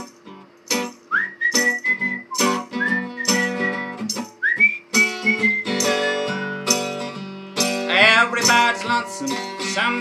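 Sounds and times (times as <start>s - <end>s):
strummed acoustic guitar: 0.0s - 10.0s
man whistling a melody: 1.1s - 7.0s.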